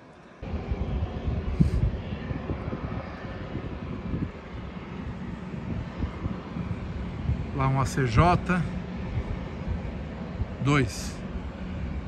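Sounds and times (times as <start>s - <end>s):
jet aircraft rumble: 0.0s - 12.0s.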